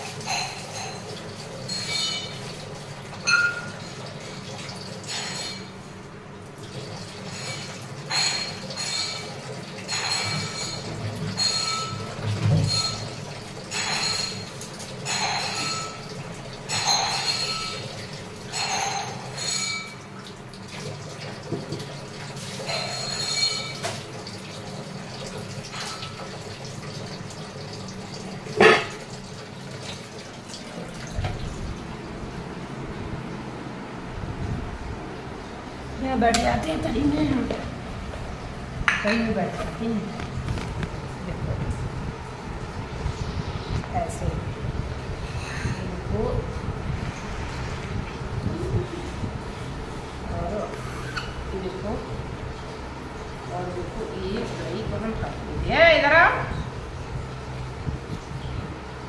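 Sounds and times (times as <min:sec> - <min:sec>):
steel vessel clinking and ringing: 0:00.2 - 0:02.5, 0:03.2 - 0:04.0, 0:05.1 - 0:05.7, 0:07.3 - 0:09.3, 0:09.9 - 0:20.0, 0:22.6 - 0:23.9.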